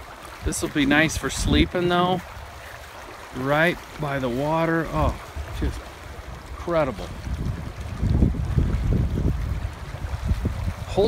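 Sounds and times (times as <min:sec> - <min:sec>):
wind buffeting microphone: 0:00.0 - 0:02.7, 0:03.4 - 0:11.0
river running over riffle: 0:00.0 - 0:11.0.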